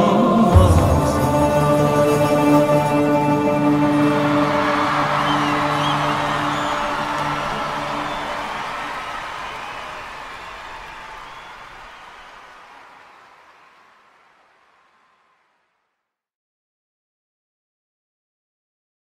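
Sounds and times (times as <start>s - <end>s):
live band final chord: 0.0s - 10.7s
audience applause: 0.5s - 15.8s
whoops and whistles: 4.0s - 13.0s.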